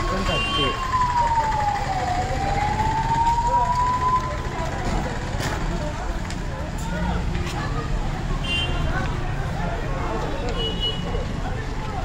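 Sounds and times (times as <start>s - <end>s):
emergency vehicle siren wailing: 0.0s - 4.9s
low street rumble: 0.0s - 12.0s
voices: 0.0s - 12.0s.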